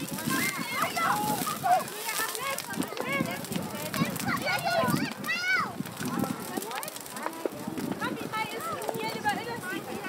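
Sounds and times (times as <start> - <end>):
bonfire crackling: 0.0 - 10.0
crowd chatter: 0.0 - 10.0.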